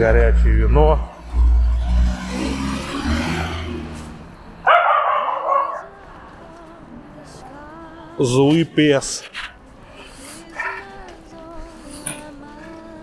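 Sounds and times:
small dog barking and yapping: 4.7 - 5.9.

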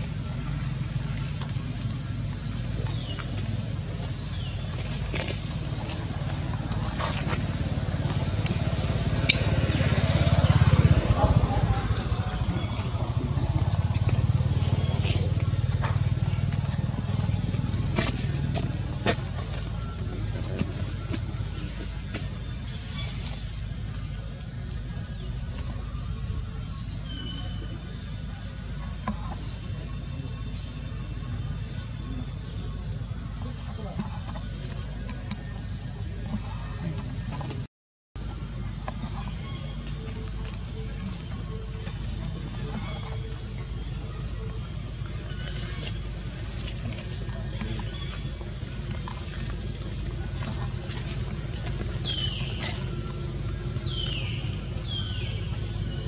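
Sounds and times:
low rumble: 0.0 - 24.0
faint voices: 0.0 - 56.0.

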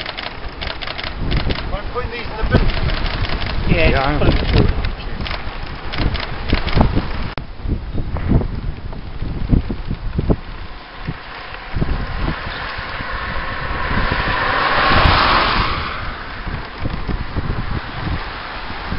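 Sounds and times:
wind buffeting microphone: 0.0 - 18.9
car tyres hissing on wet road: 10.2 - 18.9.

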